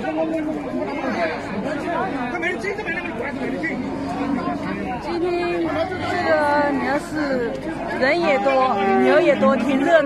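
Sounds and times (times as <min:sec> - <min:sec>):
babble of large crowd: 0:00.0 - 0:10.0.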